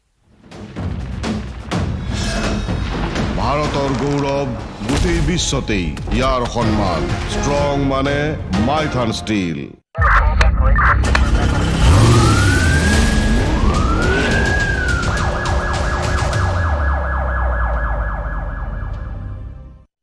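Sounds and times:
siren wailing and yelping: 11.8 - 19.2.

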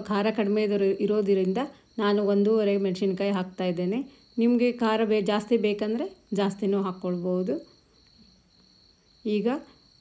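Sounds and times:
woman speaking: 0.0 - 7.8, 9.2 - 9.9.

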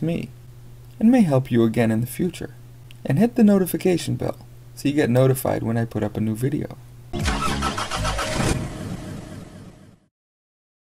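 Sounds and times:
car engine starting: 7.2 - 10.0.

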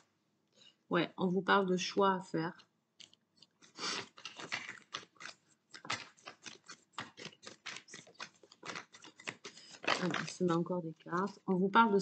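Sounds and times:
cards being shuffled by hand: 3.4 - 11.6.

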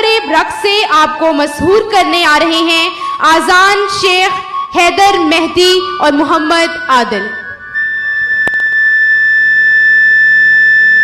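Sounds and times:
high-pitched tone over sound system: 3.7 - 11.0.

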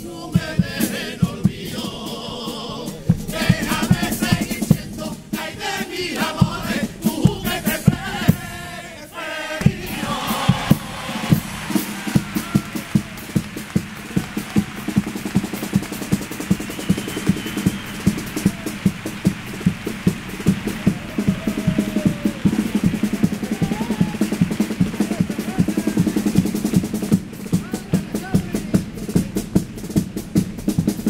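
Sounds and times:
bass drum and snare beat: 0.0 - 8.7, 9.6 - 31.0
faint voices: 16.8 - 26.5.

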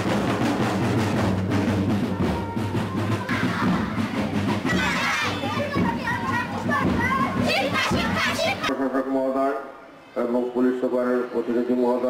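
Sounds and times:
children chanting slogans: 2.0 - 8.7.

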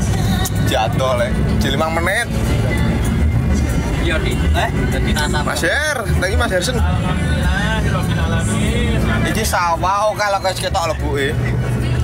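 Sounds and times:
bus engine rumble and road noise: 0.0 - 12.0
music: 0.0 - 12.0
voices: 0.2 - 12.0.

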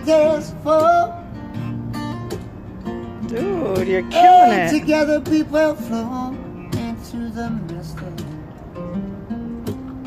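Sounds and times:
acoustic guitar strummed: 0.0 - 10.0.

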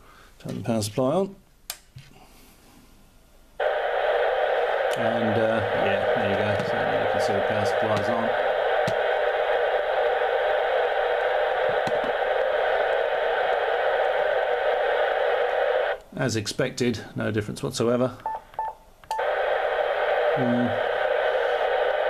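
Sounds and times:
radio receiver static hiss: 3.6 - 16.3, 18.3 - 22.0.

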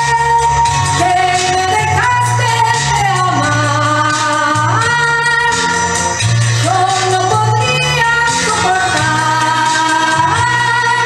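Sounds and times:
backing track music: 0.0 - 11.0
woman singing into microphone: 0.0 - 11.0.

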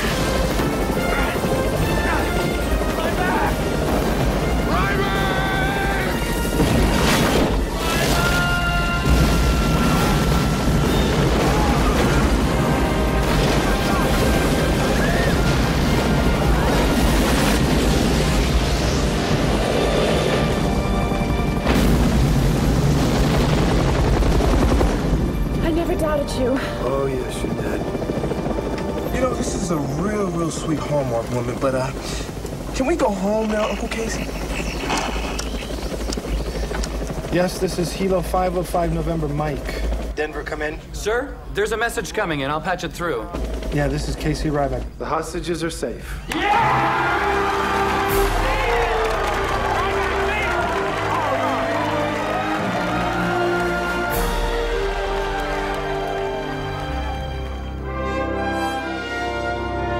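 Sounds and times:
huge explosion rumbling: 0.0 - 26.2
dramatic music score: 0.0 - 40.9, 46.2 - 59.9
helicopter rotor: 0.0 - 45.8, 46.6 - 58.4.

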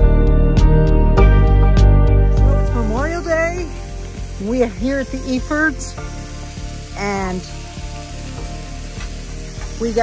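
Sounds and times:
vegetables sizzling on griddle: 2.7 - 10.0.

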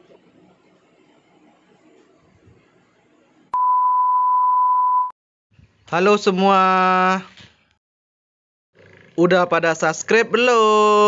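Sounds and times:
steady electronic beep tone: 3.6 - 5.1.

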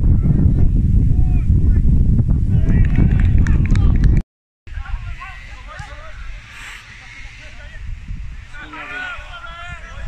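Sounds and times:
wind buffeting microphone: 0.0 - 10.0
players shouting: 4.7 - 10.0.

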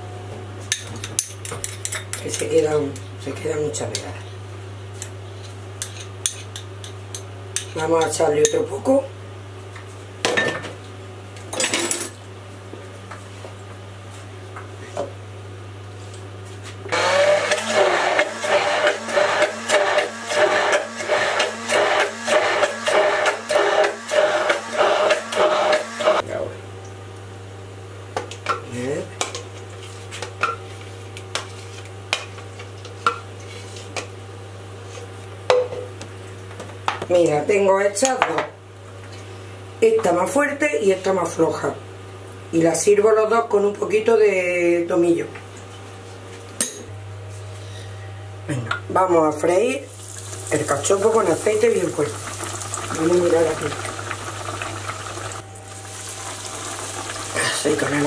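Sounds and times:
immersion blender pulsing: 16.9 - 26.2, 50.3 - 55.4.

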